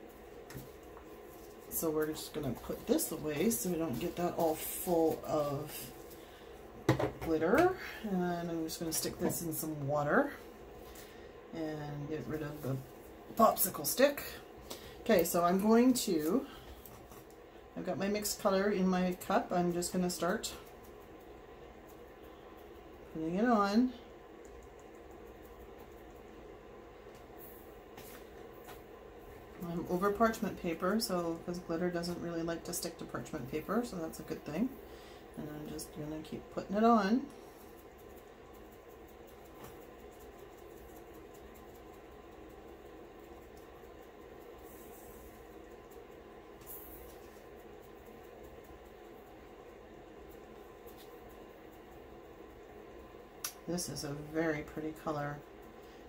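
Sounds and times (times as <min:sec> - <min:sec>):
low room hum: 0:00.0 - 0:56.0.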